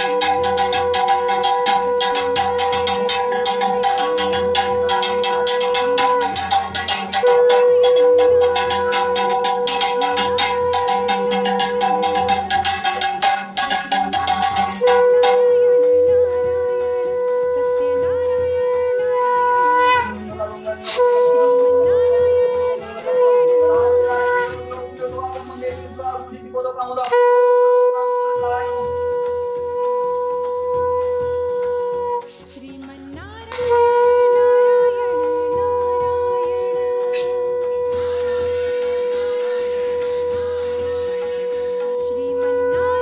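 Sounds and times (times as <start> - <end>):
wind instrument long held notes: 0.0 - 43.0.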